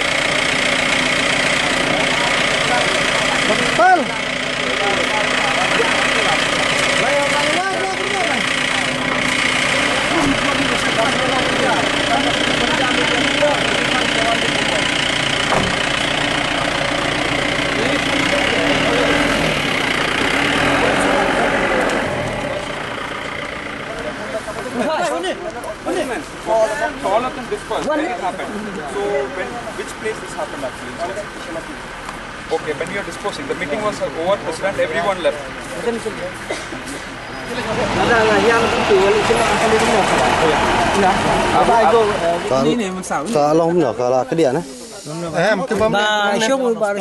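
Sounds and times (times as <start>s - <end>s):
crowd of men talking: 0.0s - 47.0s
vehicle engine idling: 0.0s - 47.0s.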